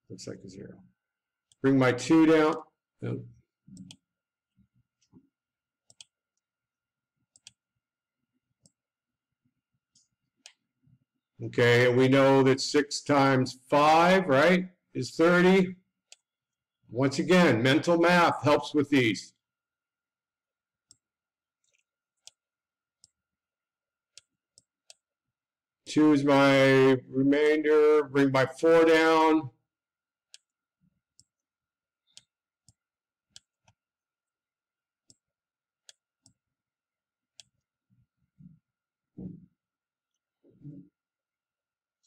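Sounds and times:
computer mouse clicks: 0:03.7 - 0:04.0, 0:05.9 - 0:06.2, 0:07.3 - 0:07.6, 0:32.1 - 0:33.8.

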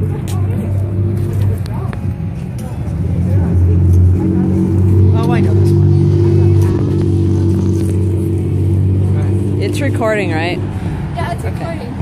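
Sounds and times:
passing cars: 0:00.0 - 0:12.0
people talking: 0:00.0 - 0:12.0.

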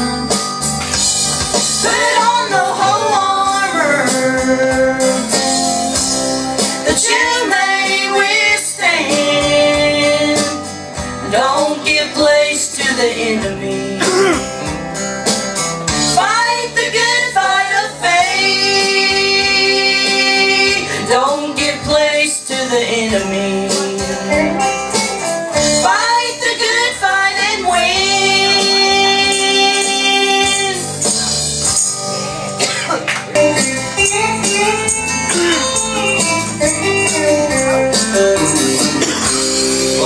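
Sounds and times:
guitar accompaniment: 0:00.0 - 0:40.0
woman singing gospel song: 0:01.8 - 0:05.3, 0:06.9 - 0:10.6, 0:11.2 - 0:14.0, 0:16.2 - 0:24.5, 0:25.8 - 0:30.9.

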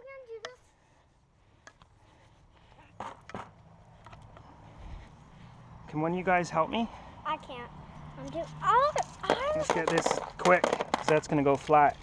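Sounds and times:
handling noise: 0:09.0 - 0:11.8.

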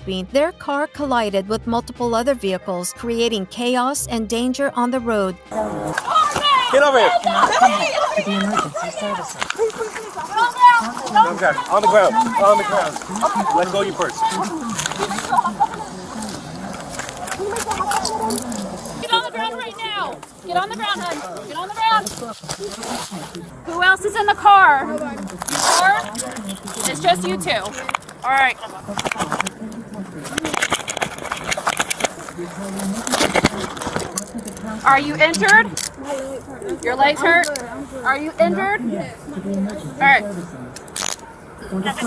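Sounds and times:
voices: 0:00.0 - 0:42.0
scuffling: 0:05.5 - 0:38.3
handcuffs clicking: 0:35.3 - 0:36.0, 0:40.8 - 0:41.2.

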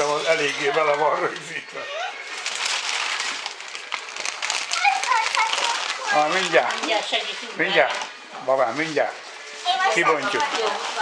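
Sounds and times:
packaging rustling and crackling: 0:02.2 - 0:11.0
child's voice: 0:04.7 - 0:06.2.

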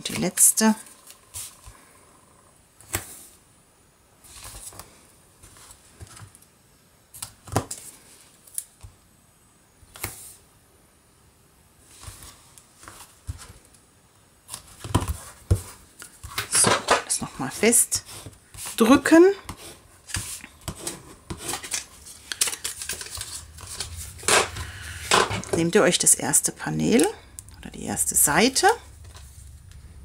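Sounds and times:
paper being handled: 0:19.5 - 0:25.5.

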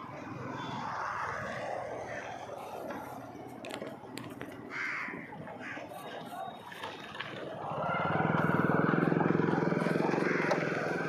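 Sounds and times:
crow cawing: 0:04.7 - 0:05.9, 0:10.0 - 0:11.0.

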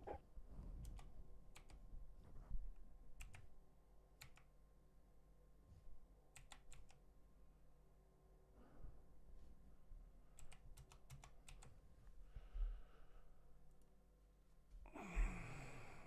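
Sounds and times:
faint keyboard typing: 0:00.8 - 0:01.9, 0:03.1 - 0:04.6, 0:06.3 - 0:07.1, 0:10.3 - 0:11.9.

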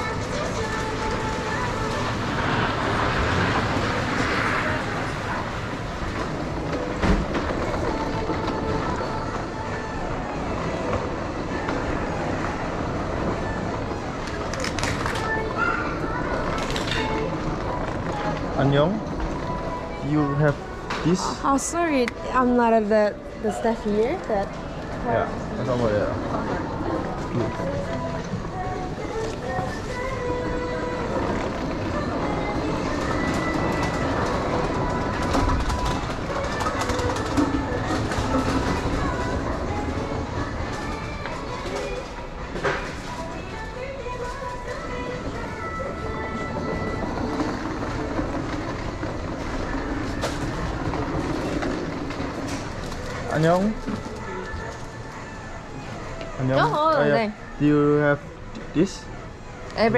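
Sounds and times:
busy indoor shop rumble: 0:00.0 - 0:59.9.

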